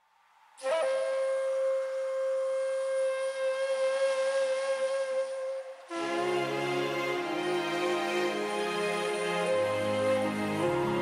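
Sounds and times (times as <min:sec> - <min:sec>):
flute-like held note: 0:00.6 - 0:11.0.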